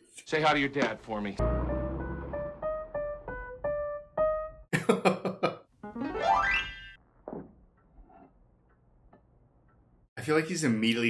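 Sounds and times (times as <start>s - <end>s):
comic rising boing glide: 1.4s - 3.0s.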